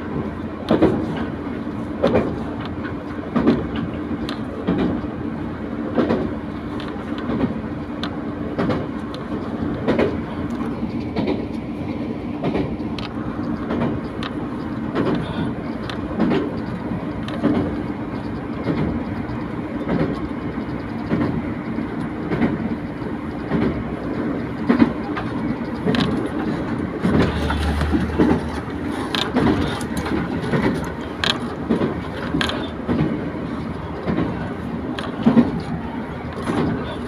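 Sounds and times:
train wheels and engine rumbling: 0.0s - 37.0s
wheels clacking over rail joints: 0.0s - 37.0s.

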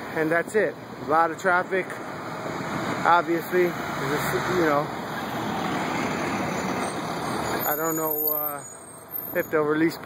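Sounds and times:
heavy street traffic: 0.0s - 10.0s.

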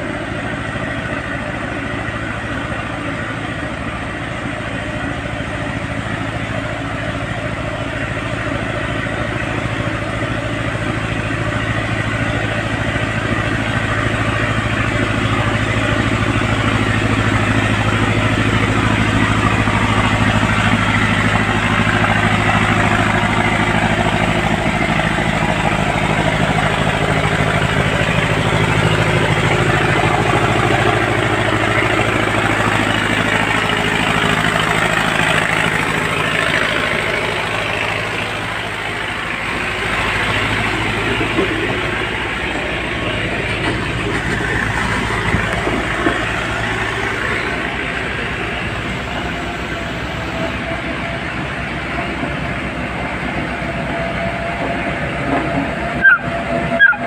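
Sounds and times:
construction machinery engine running: 0.0s - 57.0s.

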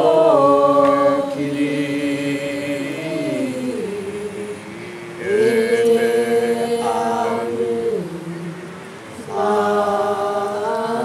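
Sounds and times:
group singing long notes: 0.0s - 11.0s.

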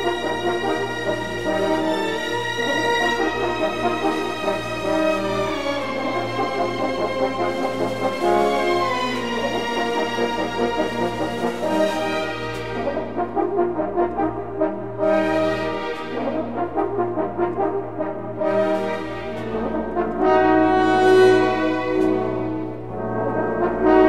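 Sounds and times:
brass playing slow chords: 0.0s - 24.0s.

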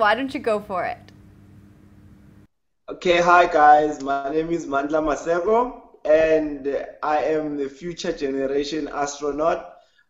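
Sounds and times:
faint steady hum: 0.0s - 2.5s.

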